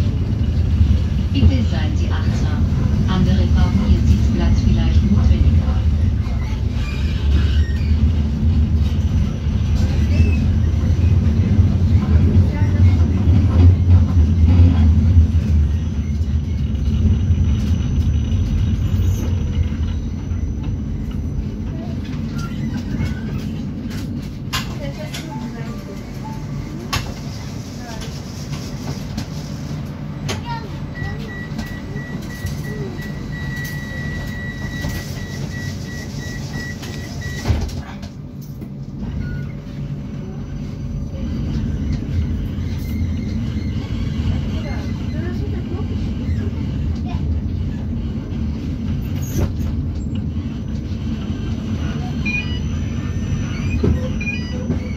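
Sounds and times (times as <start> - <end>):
tram wheels rumbling: 0.0 - 54.9.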